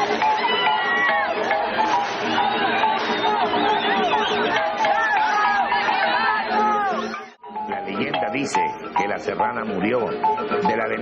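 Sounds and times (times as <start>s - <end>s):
crowd voices talking and calling out: 0.0s - 11.0s
music: 0.0s - 11.0s.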